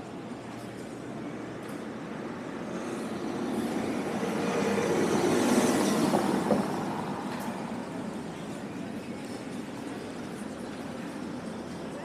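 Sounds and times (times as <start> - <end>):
car passing on brick street: 0.0 - 12.0.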